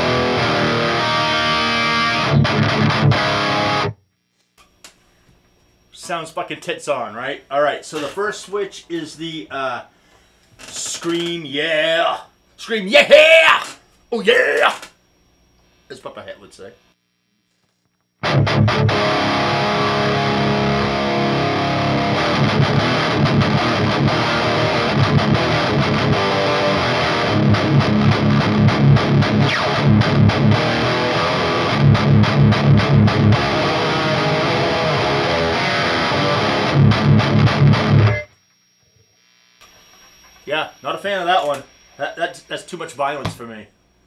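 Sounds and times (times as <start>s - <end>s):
distorted electric guitar riffing: 0.0s - 4.0s, 18.2s - 38.3s.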